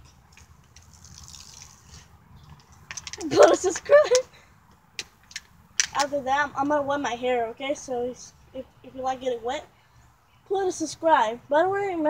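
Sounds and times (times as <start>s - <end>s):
water trickling and dripping: 0.0s - 4.3s.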